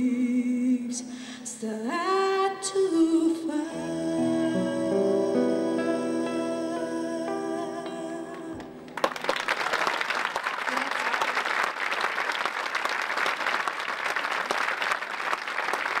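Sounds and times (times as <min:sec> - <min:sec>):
classical guitar and voice: 0:02.7 - 0:08.8
audience applause: 0:08.9 - 0:16.0.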